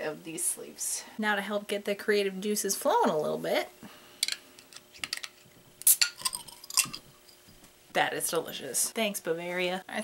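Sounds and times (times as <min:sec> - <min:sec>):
bottle opener clinking on glass bottle: 0:05.8 - 0:07.1.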